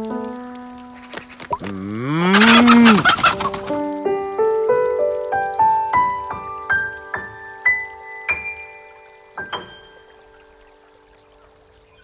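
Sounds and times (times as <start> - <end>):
piano music: 0.0 - 12.0
cow mooing: 1.7 - 3.2
chicken clucking: 2.3 - 3.6.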